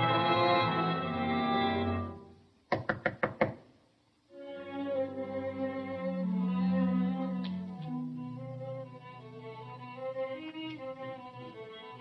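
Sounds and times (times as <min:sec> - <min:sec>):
film score music: 0:00.0 - 0:02.4, 0:04.3 - 0:12.0
quick sharp knocks: 0:02.7 - 0:03.6.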